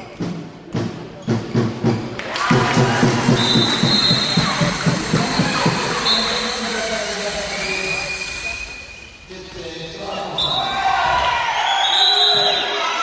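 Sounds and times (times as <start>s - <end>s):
fast beats: 0.8s - 9.1s
spectators cheering and shouting: 2.2s - 8.8s, 10.6s - 13.0s
long high whistle: 3.3s - 9.3s, 11.6s - 12.9s.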